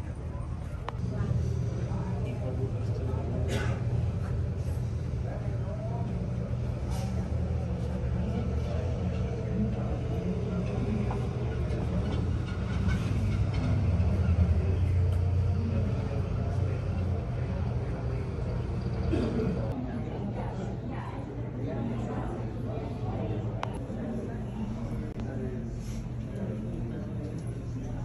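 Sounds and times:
bus passing: 0.0s - 19.8s
road traffic rumble: 0.0s - 19.8s
faint voices: 0.0s - 28.0s.

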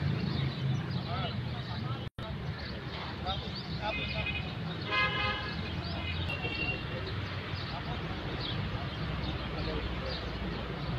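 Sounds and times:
traffic rumble: 0.0s - 10.9s
vehicle horn toot: 3.8s - 6.9s.

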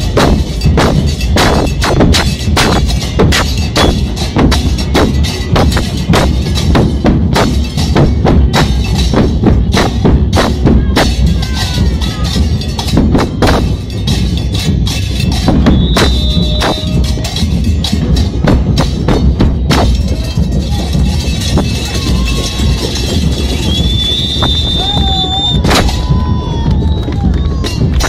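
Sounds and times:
bass drums beating street rhythm: 0.0s - 28.0s.

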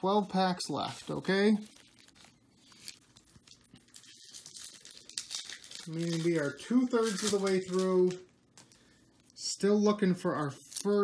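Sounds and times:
foil wrapper crinkling and tearing: 0.6s - 9.4s, 10.5s - 11.0s.

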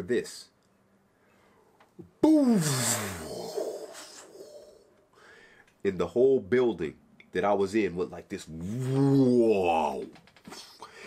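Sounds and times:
man imitating an explosion: 2.2s - 4.7s.

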